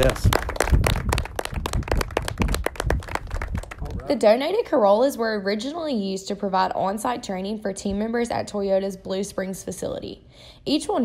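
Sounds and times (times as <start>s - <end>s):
people clapping: 0.0s - 4.1s.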